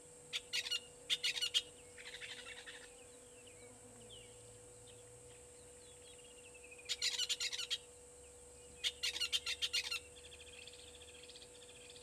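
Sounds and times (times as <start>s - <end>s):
bird trilling: 0.3s - 2.9s, 6.9s - 7.8s, 8.8s - 10.1s.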